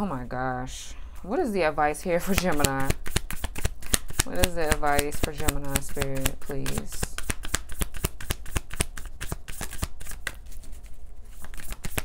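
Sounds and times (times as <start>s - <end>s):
cards being shuffled: 2.2s - 12.0s.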